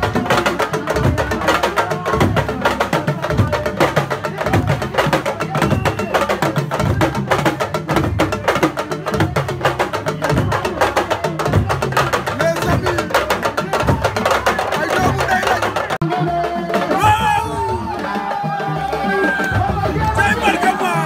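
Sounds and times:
fast driving drum rhythm: 0:00.0 - 0:21.0.

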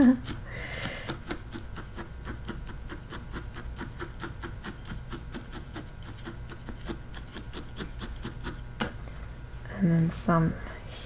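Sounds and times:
felting needle stabbing wool: 0:00.0 - 0:08.9
low steady hum: 0:00.0 - 0:11.0.

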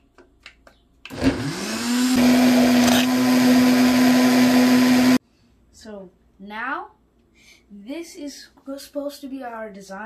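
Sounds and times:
blender motor running: 0:01.1 - 0:05.2.

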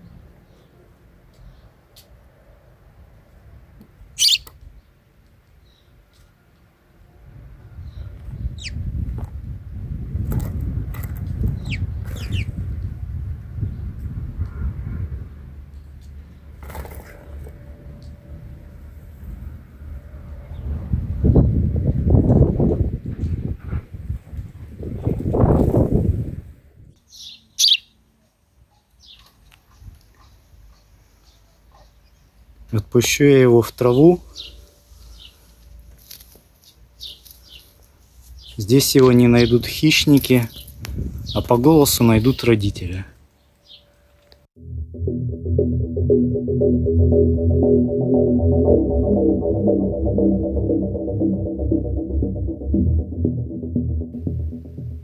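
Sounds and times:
sparrows chirping: 0:04.2 - 0:04.5, 0:27.1 - 0:27.9
low rushing noise: 0:44.6 - 0:55.0.

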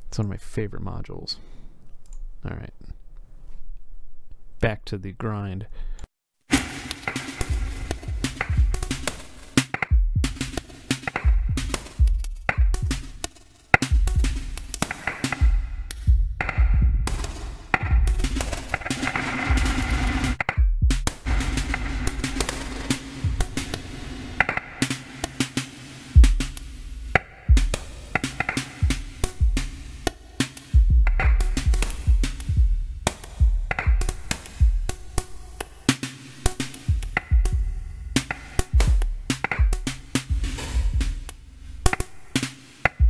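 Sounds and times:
electronic drum beat: 0:06.5 - 0:43.0.

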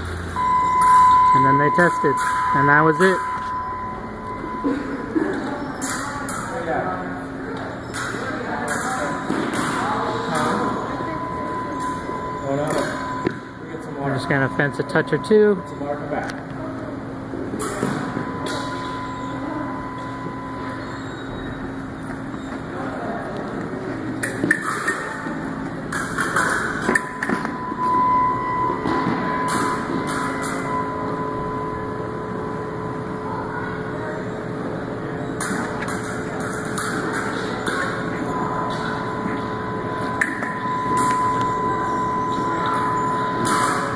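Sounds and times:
steady hum: 0:00.0 - 0:43.9
thin tone: 0:00.3 - 0:07.2, 0:08.8 - 0:23.1, 0:26.0 - 0:43.9.

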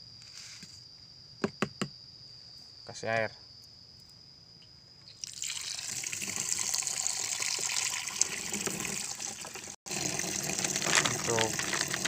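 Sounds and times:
tap water pouring into plastic tank: 0:05.2 - 0:12.0.

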